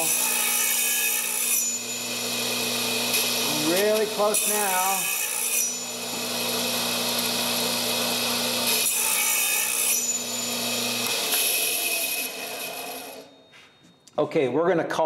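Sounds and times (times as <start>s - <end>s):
saw cutting wood: 0.0s - 13.3s
saw motor humming: 0.0s - 13.3s.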